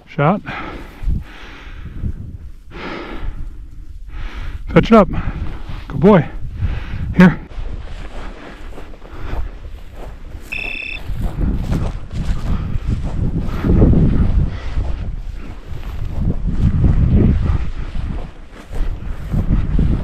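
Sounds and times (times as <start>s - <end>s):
wind buffeting microphone: 0.4s - 20.0s
brief high-pitched tone: 10.5s - 11.1s.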